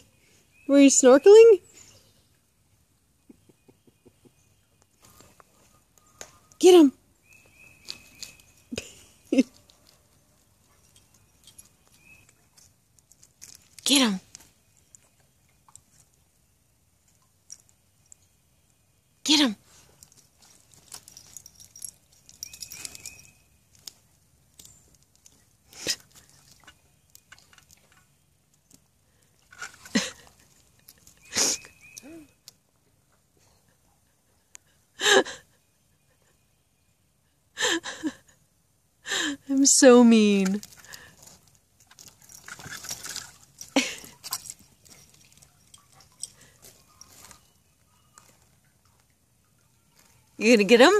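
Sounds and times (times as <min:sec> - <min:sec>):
dog paws splashing in water: 0:07.3 - 0:16.4, 0:19.7 - 0:32.0, 0:40.1 - 0:50.9
woman's stifled laughter: 0:35.0 - 0:35.6, 0:37.6 - 0:38.4.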